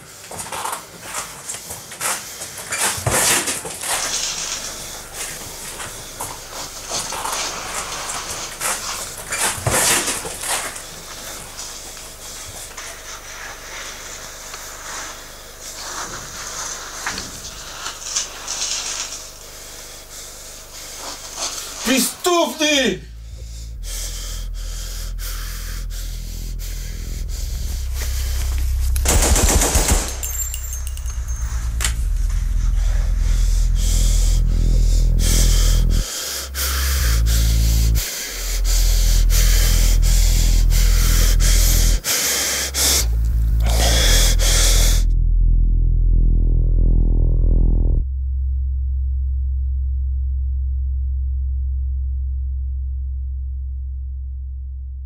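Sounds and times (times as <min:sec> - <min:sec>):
low steady drone: 0:03.9 - 0:22.2, 0:23.0 - 0:55.0
heavy rapid breathing: 0:19.5 - 0:45.1.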